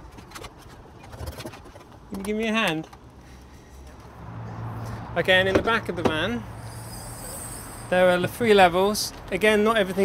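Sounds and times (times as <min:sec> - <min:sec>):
road traffic hum: 0:00.0 - 0:10.0.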